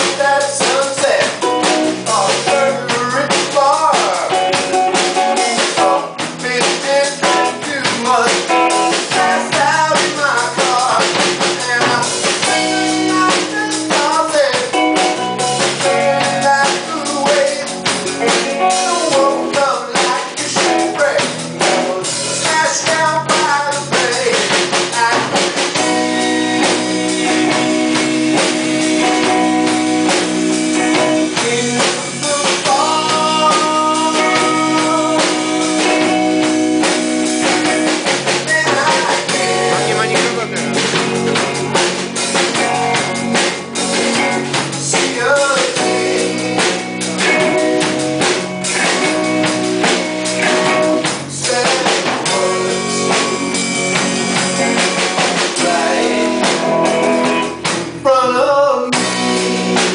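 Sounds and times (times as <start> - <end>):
male lead vocal: 0.0 - 26.7, 30.8 - 41.9, 42.5 - 53.6, 54.4 - 59.9
live rock band playing: 0.0 - 59.9.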